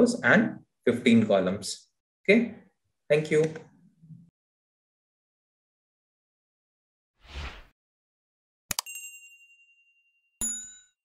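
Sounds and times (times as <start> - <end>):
clicked ding: 8.7 - 11.0
bright bell chime: 8.8 - 11.0.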